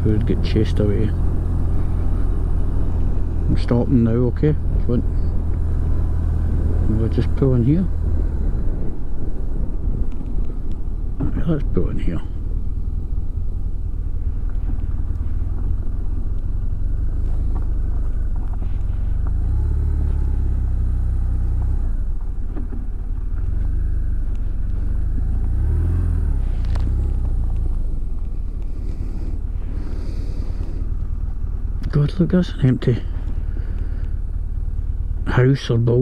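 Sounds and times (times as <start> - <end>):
motorcycle engine low rumble: 0.0 - 36.0.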